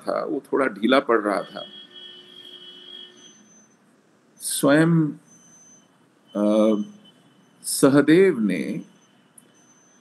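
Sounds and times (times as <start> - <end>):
thin high-pitched whine: 0.0 - 10.0.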